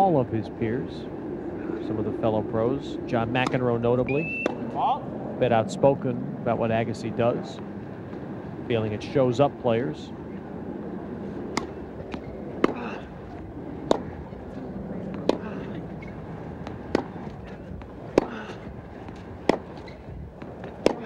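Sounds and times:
crowd hum: 0.0s - 21.0s
tennis ball hit by rackets: 4.4s - 4.7s, 11.5s - 21.0s.

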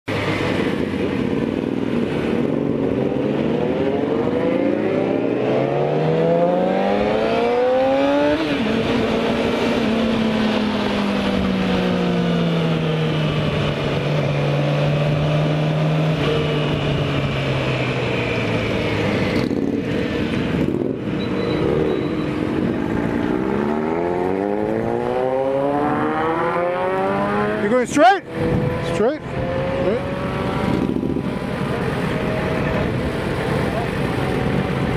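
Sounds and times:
wind rush: 0.1s - 5.5s, 22.4s - 34.9s
motorcycle engine accelerating: 0.1s - 34.9s.

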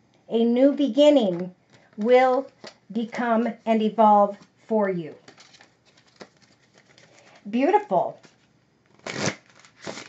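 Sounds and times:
cards riffling: 5.2s - 7.4s, 8.2s - 10.0s.

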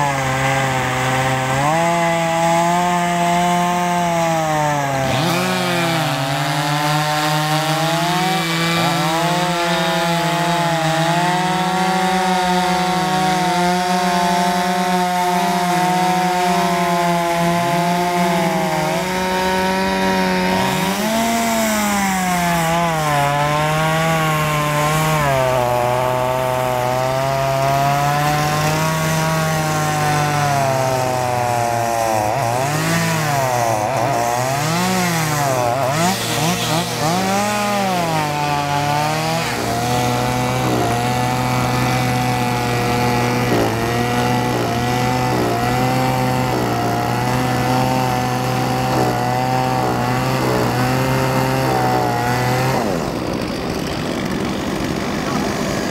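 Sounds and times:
chainsaw cutting ice: 0.0s - 55.9s.

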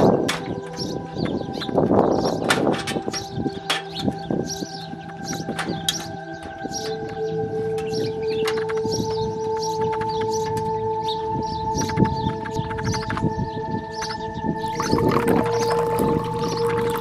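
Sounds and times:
birds chirping: 0.0s - 17.0s
droning tones: 14.6s - 17.0s.

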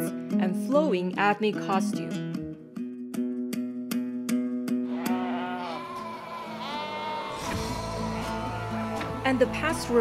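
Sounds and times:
sheep bleating: 4.8s - 9.2s.

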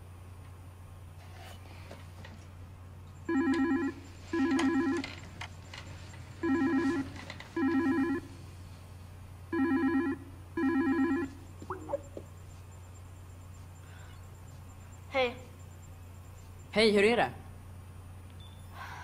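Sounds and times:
video call ringtone: 3.3s - 5.0s, 6.4s - 8.3s, 9.6s - 12.0s.

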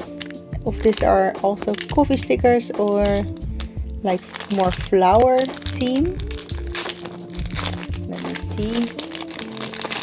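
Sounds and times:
plastic bag crinkling: 0.0s - 2.3s, 2.9s - 10.0s
soft background music: 0.0s - 10.0s.

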